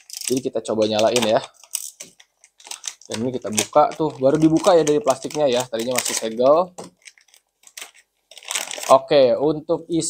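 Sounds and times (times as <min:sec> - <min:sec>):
plastic bag crinkling: 0:00.0 - 0:09.2.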